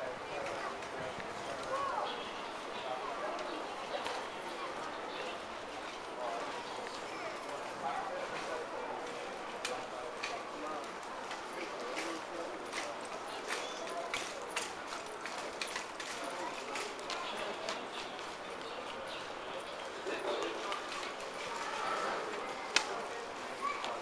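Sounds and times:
murmur of voices: 0.0 - 24.0.

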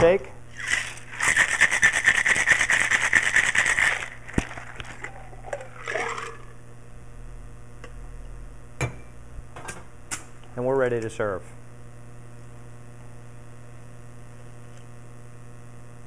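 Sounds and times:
cocktail shaker rattling: 0.6 - 6.5.

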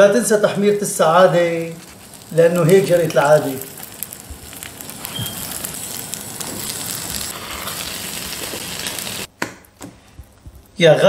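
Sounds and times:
food sizzling in a pan: 0.4 - 9.3.

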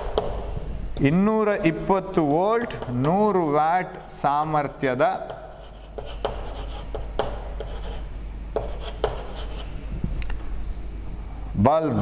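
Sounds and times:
chalk tapping on board: 5.2 - 9.7
chalk scratching on board: 5.2 - 9.8.

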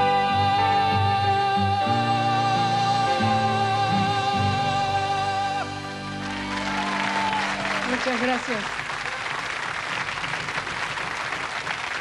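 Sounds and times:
audience applause: 6.1 - 12.0.

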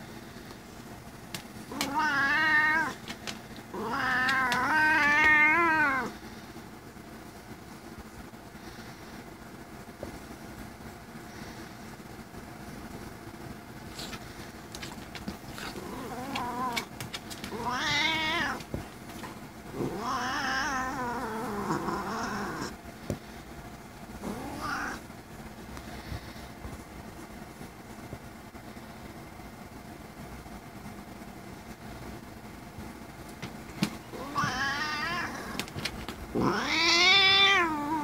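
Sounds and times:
cat meowing: 1.7 - 3.0, 3.8 - 6.1, 17.5 - 18.6, 19.8 - 22.7, 24.3 - 25.0, 34.2 - 35.6, 36.4 - 38.0.

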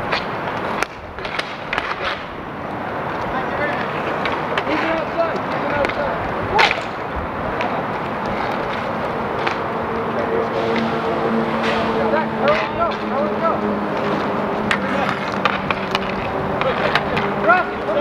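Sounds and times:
hockey sticks clacking: 0.0 - 18.0
skate wheels rolling: 0.0 - 18.0.

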